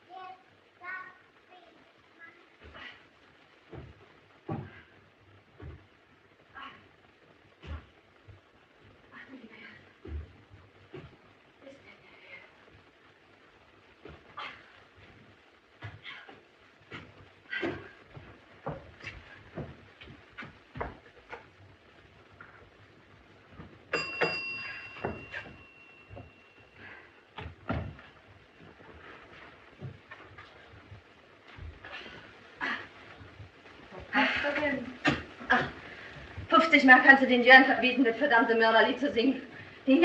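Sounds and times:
footsteps on wooden stairs: 3.7s - 6.0s, 7.6s - 8.4s, 14.0s - 36.7s
doorbell ringing: 23.9s - 26.7s.

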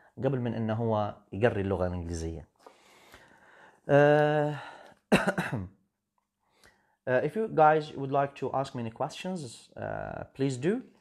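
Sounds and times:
man clearing throat: 5.1s - 5.8s.

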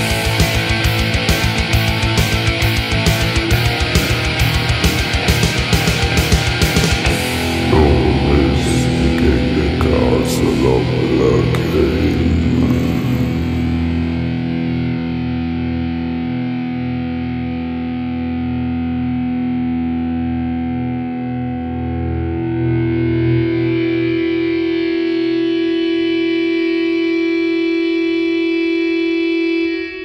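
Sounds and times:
low bass notes: 0.0s - 19.0s
distorted electric guitar chords: 0.0s - 30.0s.

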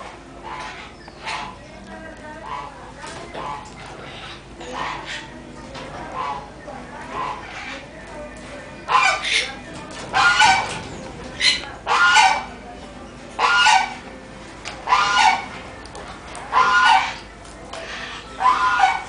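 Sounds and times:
goose honking: 0.0s - 1.6s, 2.4s - 7.9s, 8.8s - 12.6s, 13.4s - 14.1s, 14.8s - 19.0s.

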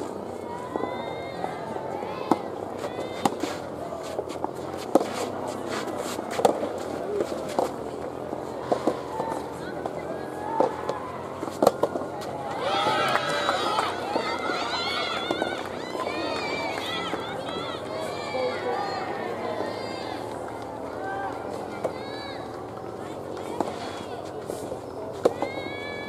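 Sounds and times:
voices calling out: 0.0s - 26.0s
rackets hitting ball: 0.1s - 15.8s, 21.3s - 25.8s.

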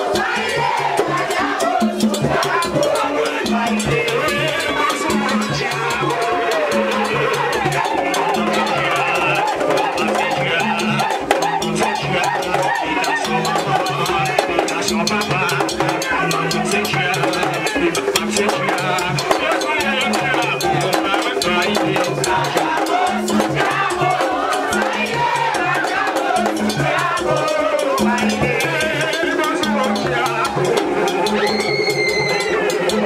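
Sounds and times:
drums and percussion beat: 0.0s - 33.0s
person singing: 1.7s - 24.3s.

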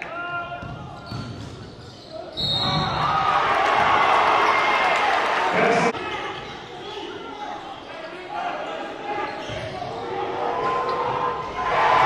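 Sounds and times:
crowd cheering: 2.7s - 6.0s, 10.0s - 12.0s.

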